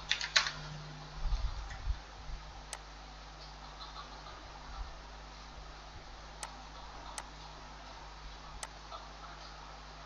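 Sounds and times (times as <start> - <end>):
faint hiss and low hum: 0.0 - 10.0.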